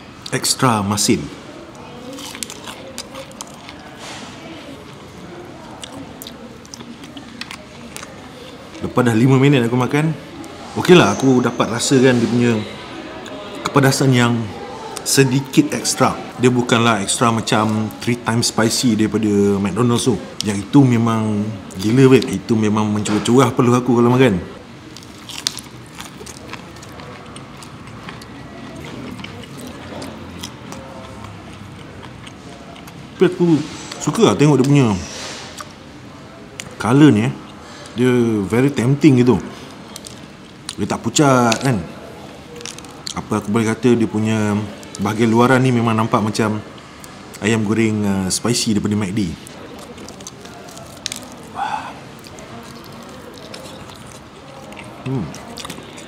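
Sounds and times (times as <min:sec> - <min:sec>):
faint background voices: 0:00.0 - 0:56.0
room hum: 0:00.0 - 0:56.0
crispy food crackling: 0:00.2 - 0:09.6, 0:23.6 - 0:56.0
crunching fried chicken: 0:01.6 - 0:09.2, 0:24.8 - 0:38.0, 0:38.6 - 0:47.9, 0:48.5 - 0:56.0.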